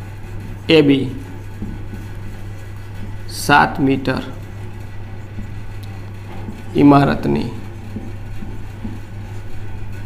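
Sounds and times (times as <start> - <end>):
low droning hum: 0.0 - 10.0.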